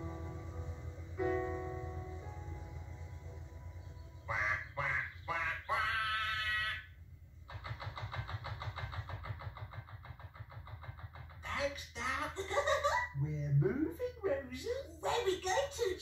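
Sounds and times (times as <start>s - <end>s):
short quacking calls: 4.3s - 6.9s.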